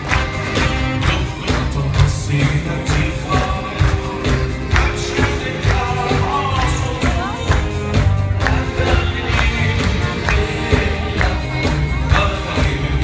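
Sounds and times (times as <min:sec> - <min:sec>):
keyboard: 0:00.0 - 0:13.0
live pop band: 0:00.0 - 0:13.0
steady drum beat: 0:00.0 - 0:13.0.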